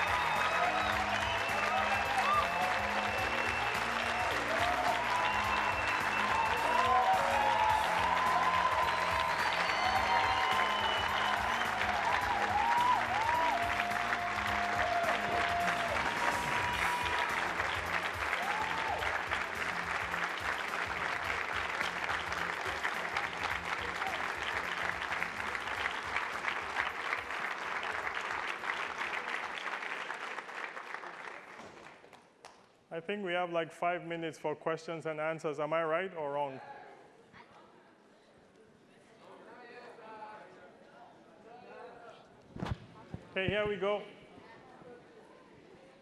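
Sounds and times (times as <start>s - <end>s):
music playing: 0.0s - 29.0s
audience applauding: 0.0s - 32.6s.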